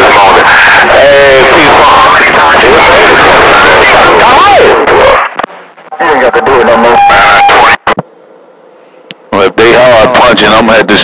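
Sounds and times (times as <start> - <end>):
distorted radio voices: 0.0 - 8.1, 8.8 - 11.0.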